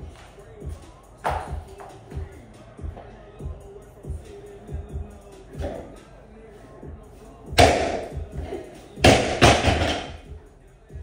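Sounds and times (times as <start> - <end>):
background music: 0.0 - 11.0
gym equipment thudding on floor: 9.1 - 10.1.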